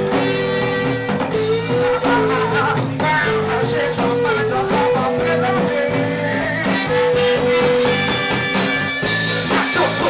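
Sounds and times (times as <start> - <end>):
bass line: 0.0 - 10.0.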